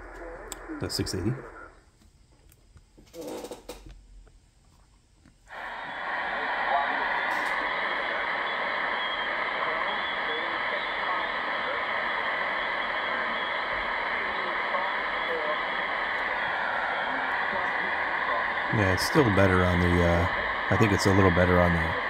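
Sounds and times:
radio static hiss: 0.0 - 1.9, 3.1 - 3.8, 5.5 - 22.0
faint radio voice: 5.5 - 22.0.

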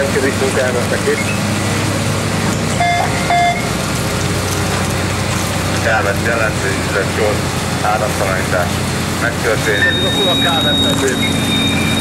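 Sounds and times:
engine running with low drone: 0.0 - 12.0
short electronic beeps: 1.1 - 1.5, 2.8 - 3.7, 9.7 - 12.0.

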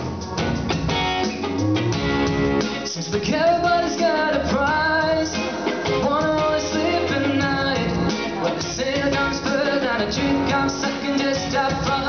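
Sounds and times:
electric guitar choppy strumming: 0.0 - 12.0
man singing into microphone: 2.8 - 12.0.

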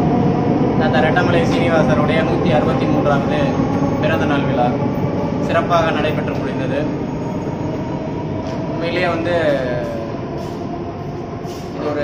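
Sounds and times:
rumbling background noise: 0.0 - 12.0
man talking: 0.8 - 4.8, 5.4 - 7.0, 8.8 - 10.1, 11.8 - 12.0.

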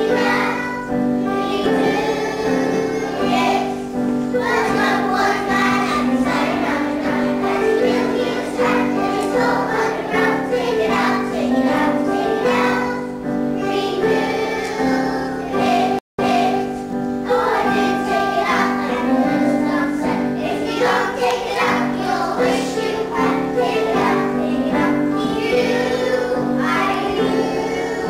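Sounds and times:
young children singing: 0.0 - 28.0.

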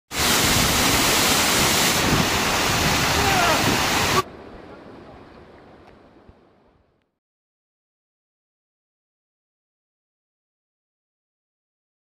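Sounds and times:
waterfall rushing: 0.1 - 4.3.

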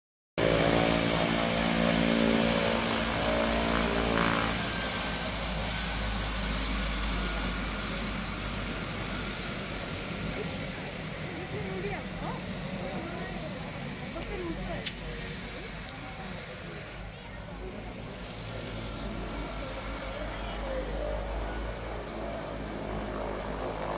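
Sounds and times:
turboprop plane taxiing: 0.4 - 23.9.

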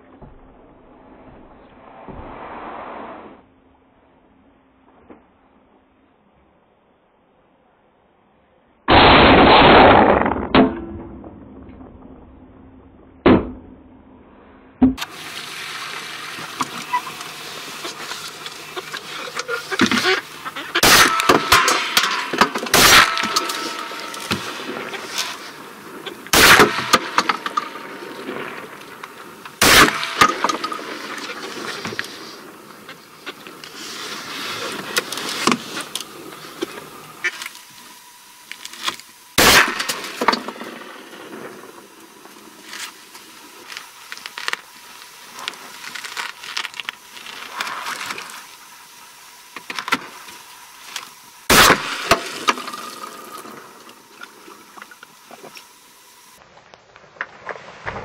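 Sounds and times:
shotgun shots: 8.9 - 11.2, 20.8 - 25.7, 26.3 - 28.8, 29.6 - 31.7, 39.4 - 40.3, 51.5 - 52.4.

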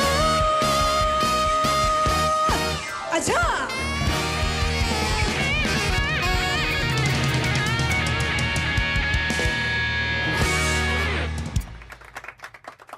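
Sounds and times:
live band playing: 0.0 - 12.1.

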